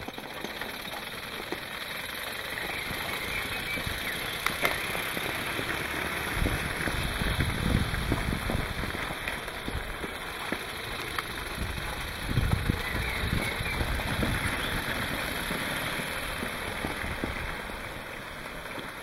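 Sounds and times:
plastic wheels rolling on paving: 0:00.0 - 0:19.0.

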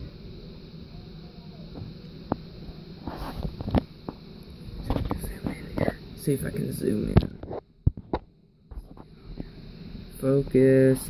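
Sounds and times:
faint distant voices: 0:00.8 - 0:03.1.

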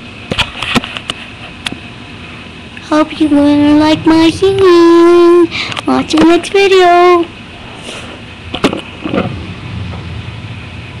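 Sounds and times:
low rumbling of handled microphone: 0:02.8 - 0:06.6, 0:08.8 - 0:11.0.

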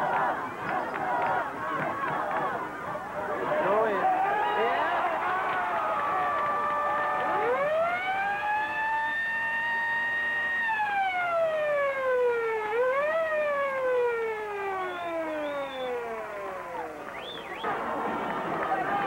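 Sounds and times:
siren wailing: 0:06.2 - 0:17.7.

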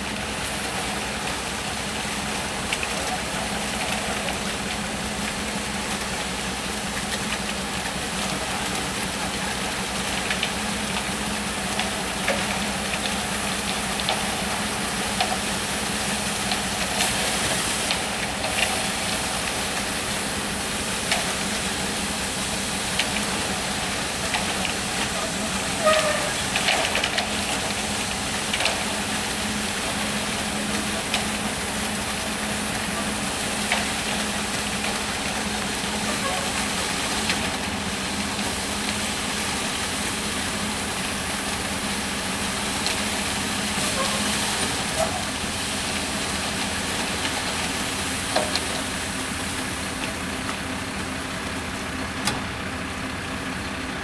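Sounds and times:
concrete mixer truck humming: 0:00.0 - 0:54.0
concrete pouring down chute: 0:00.0 - 0:54.0.

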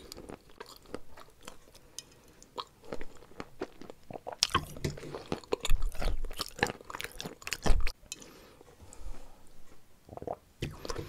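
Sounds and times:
chewing and crunching: 0:00.0 - 0:08.3.

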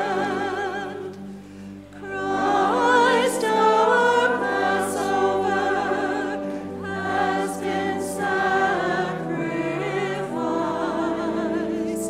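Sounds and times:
church choir singing a hymn: 0:00.0 - 0:12.0.

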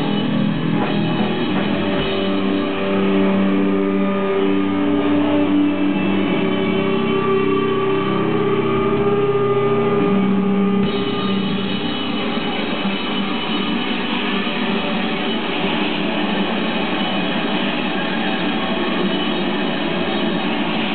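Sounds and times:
electric guitar sustained notes: 0:00.0 - 0:20.9.

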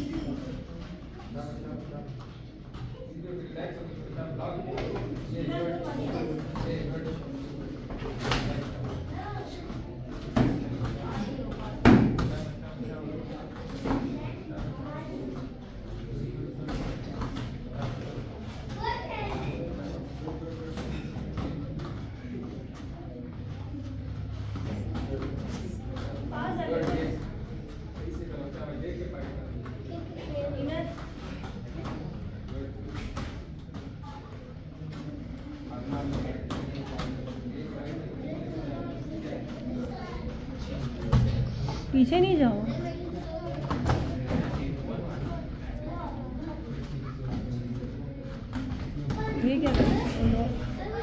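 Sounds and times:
indistinct talking echoing: 0:00.0 - 0:51.0.

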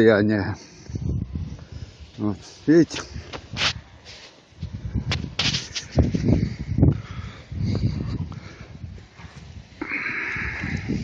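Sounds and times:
gusty wind buffeting microphone: 0:00.0 - 0:11.0.

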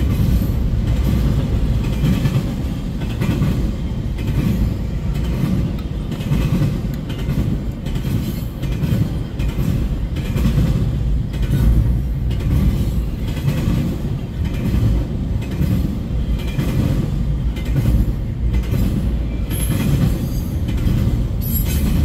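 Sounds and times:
freight train rumbling past: 0:00.0 - 0:22.0.

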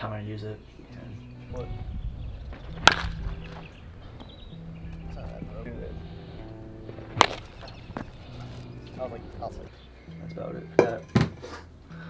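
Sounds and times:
wooden bat hitting baseball: 0:02.5 - 0:04.3, 0:06.9 - 0:09.2.

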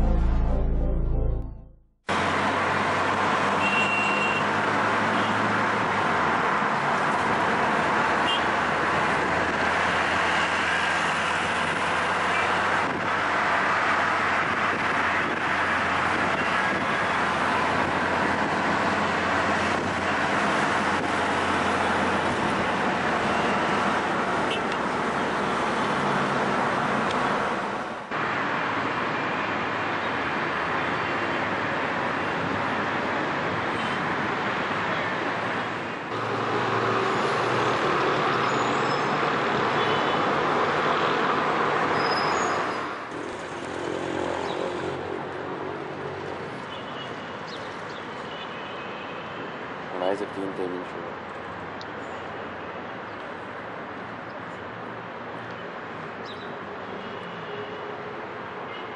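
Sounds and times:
road traffic noise: 0:00.0 - 0:58.9.

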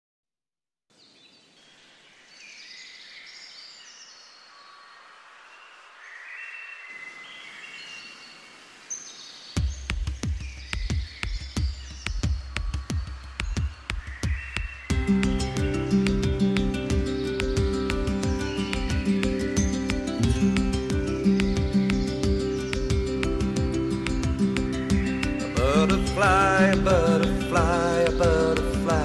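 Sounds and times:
small birds chirping: 0:00.9 - 0:29.0
music with sharp percussive beat: 0:09.6 - 0:29.0.

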